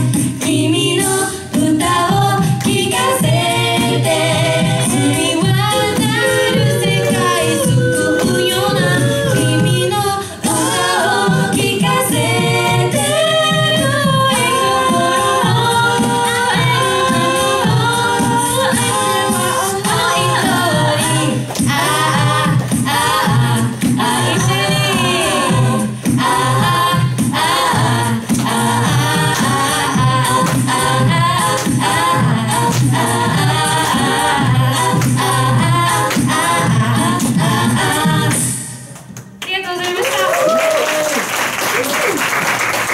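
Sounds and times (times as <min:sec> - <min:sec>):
a cappella group singing: 0:00.0 - 0:39.0
vocal percussion beat: 0:00.0 - 0:42.2.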